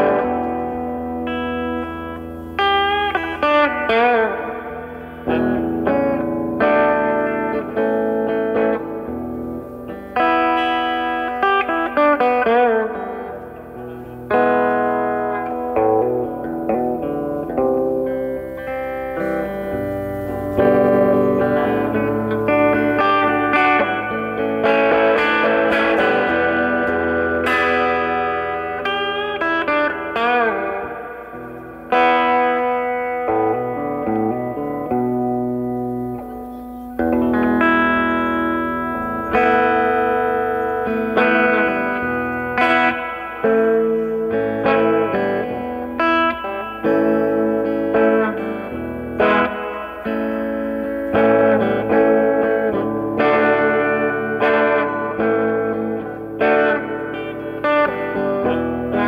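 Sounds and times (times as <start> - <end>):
electric guitar playing notes and chords: 0.0 - 59.0.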